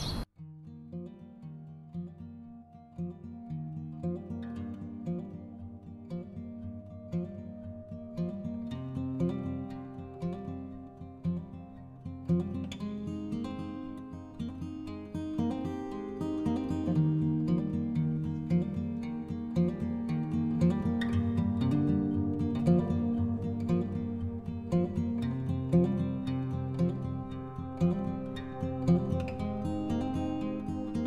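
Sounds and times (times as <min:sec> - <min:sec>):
acoustic guitar music: 0:00.3 - 0:31.0.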